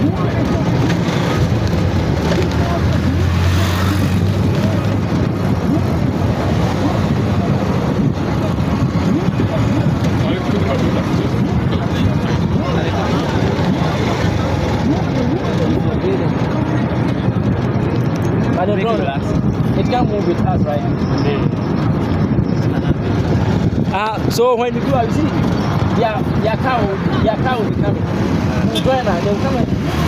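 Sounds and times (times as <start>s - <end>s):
indistinct voices: 0.0s - 30.0s
vehicle engine and road noise: 0.0s - 30.0s.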